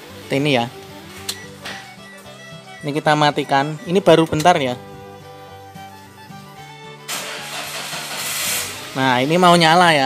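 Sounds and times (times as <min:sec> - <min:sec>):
car engine starting: 0:07.0 - 0:09.0.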